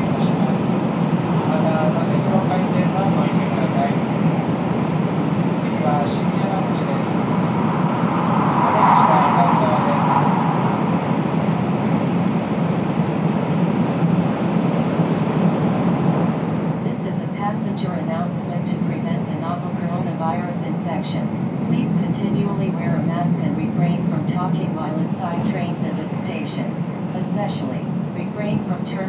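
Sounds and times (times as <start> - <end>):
train wheels and air rumble: 0.0 - 28.9.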